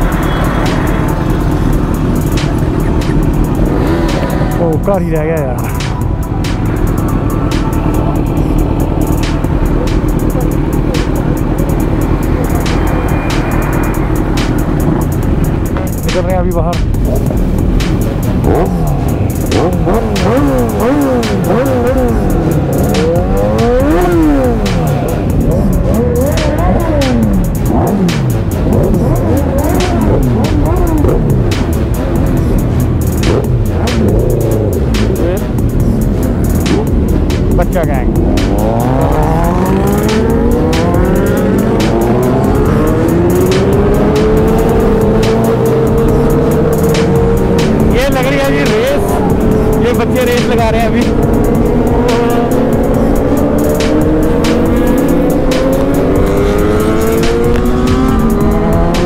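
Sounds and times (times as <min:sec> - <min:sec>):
motorcycle engines revving: 0:00.0 - 0:59.0
motorcycles accelerating: 0:00.0 - 0:59.0.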